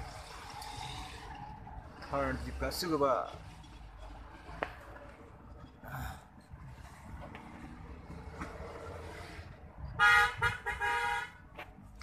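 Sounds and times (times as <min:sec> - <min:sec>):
vehicles passing on road: 0:00.0 - 0:12.0.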